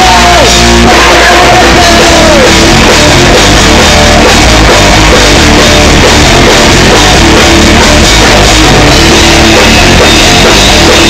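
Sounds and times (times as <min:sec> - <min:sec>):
shouted vocal: 0:00.0 - 0:02.8
drum kit: 0:00.0 - 0:11.0
electric guitar: 0:00.0 - 0:11.0.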